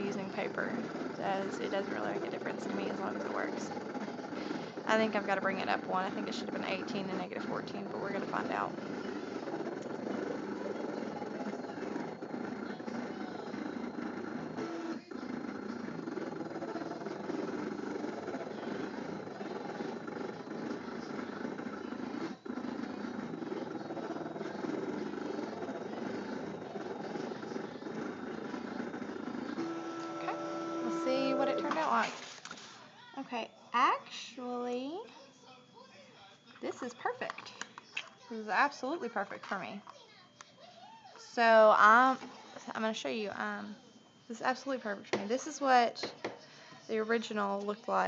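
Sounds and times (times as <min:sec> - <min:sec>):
cutting machine motors whirring: 0:00.0 - 0:32.3
machine pitched hum: 0:00.0 - 0:35.1.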